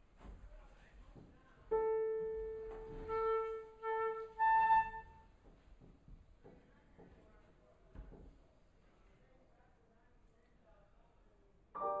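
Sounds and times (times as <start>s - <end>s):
flute notes: 1.7s - 5.3s.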